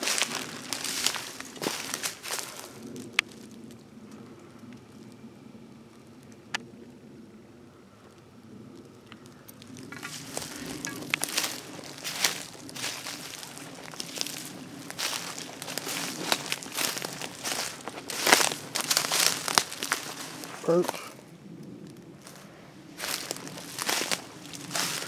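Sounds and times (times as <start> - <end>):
footsteps crunching through dry leaves: 0.0 - 3.8, 9.3 - 21.2, 21.8 - 25.0.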